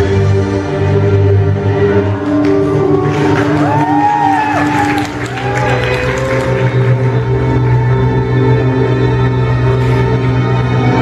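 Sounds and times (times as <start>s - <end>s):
dance music: 0.0s - 11.0s
audience cheering and clapping: 2.0s - 7.8s.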